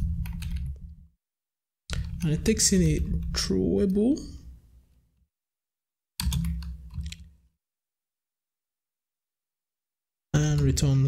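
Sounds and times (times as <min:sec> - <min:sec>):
computer keyboard keystrokes: 0:06.2 - 0:07.3.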